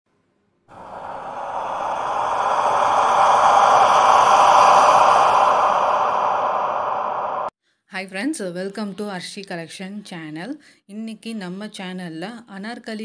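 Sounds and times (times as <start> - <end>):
breathy whoosh: 0.7 - 7.5.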